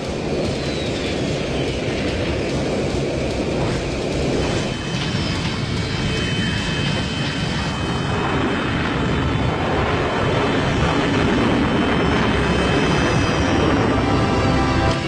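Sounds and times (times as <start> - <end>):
cartoon jet engine drone: 0.3 - 15.0.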